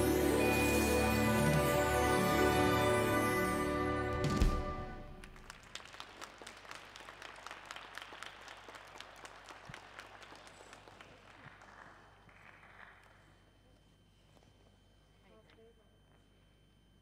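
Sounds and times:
sparse audience applause: 5.2s - 13.4s.

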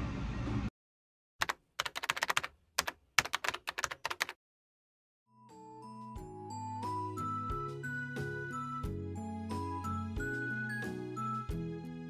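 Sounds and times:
computer keyboard typing: 1.4s - 4.4s
soft music with held notes: 5.3s - 12.0s.

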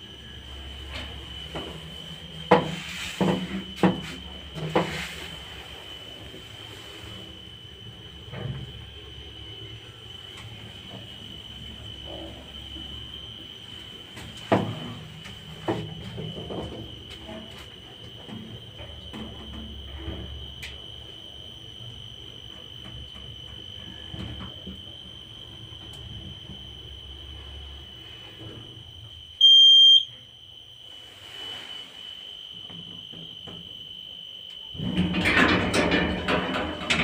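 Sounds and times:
lift car rumble: 0.0s - 29.2s, 34.7s - 37.0s
steady high whine: 0.0s - 34.7s
loud electronic beep: 29.4s - 30.1s
lift doors sliding open rattle: 34.8s - 37.0s.

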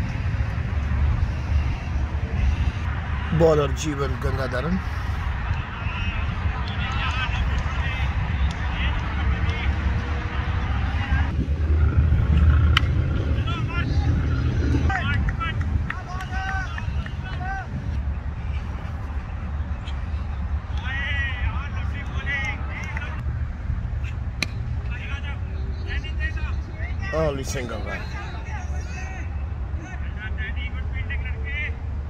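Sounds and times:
steady low rumble: 0.0s - 27.4s.

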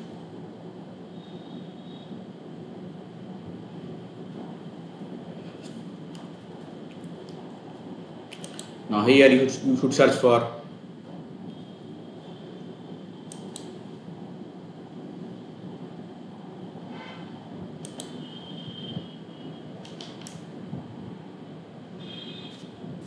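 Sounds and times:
low background hum: 0.0s - 23.0s
computer mouse clicks: 8.3s - 8.8s, 13.3s - 13.8s, 17.8s - 18.2s, 19.8s - 20.4s.

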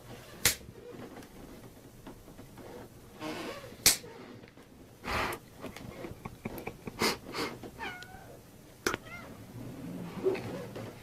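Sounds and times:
cat meowing: 7.8s - 8.4s, 9.0s - 9.3s.

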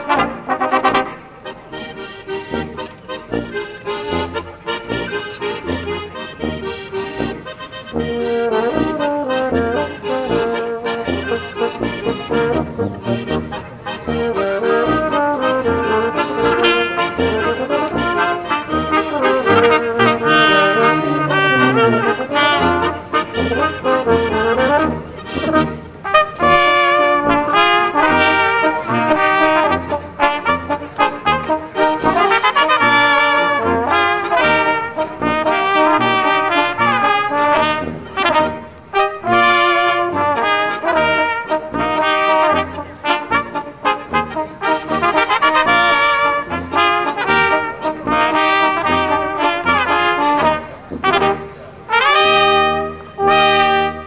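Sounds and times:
flugelhorn and trumpets melody: 0.0s - 54.0s
tuba oom-pah bass line: 0.0s - 54.0s.

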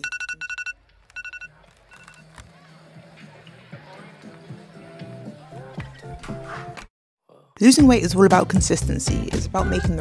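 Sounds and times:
electronic telephone ring: 0.0s - 2.3s.

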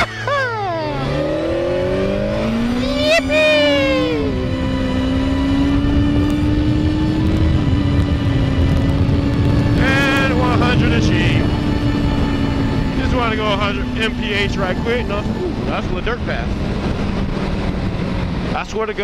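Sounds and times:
motorcycle engine accelerating: 0.0s - 19.0s
wind rushing over microphone: 1.4s - 19.0s.

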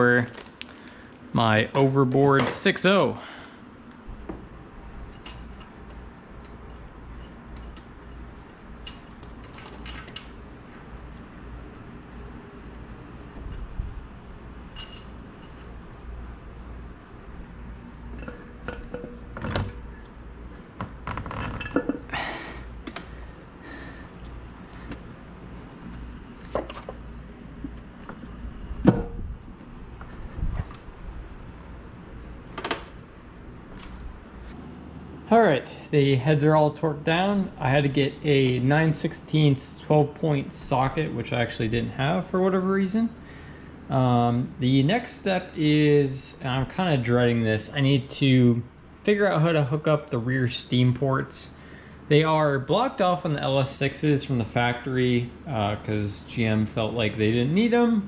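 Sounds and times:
low steady hum: 0.0s - 58.0s
metal tools clinking and knocking: 5.1s - 5.8s, 6.4s - 10.3s, 14.6s - 15.8s, 21.2s - 22.1s.

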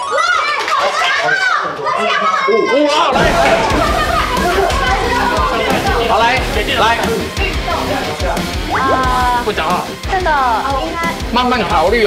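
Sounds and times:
excited voices calling out: 0.0s - 11.7s.

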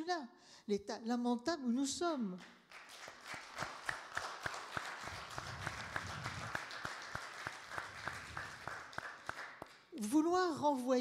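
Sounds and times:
audience applauding: 2.7s - 9.9s.

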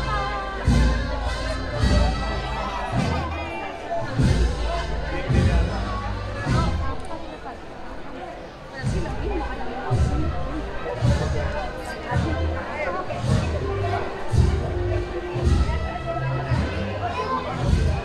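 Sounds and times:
deep drum beat: 0.0s - 3.4s, 4.1s - 6.9s, 8.8s - 16.9s
wind band playing a march: 0.0s - 6.9s, 9.9s - 18.0s
crowd chatter: 0.0s - 18.0s.

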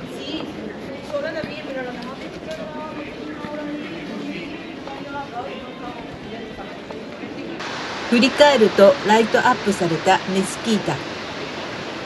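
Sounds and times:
people chattering: 0.0s - 12.0s
street noise: 0.0s - 12.0s.

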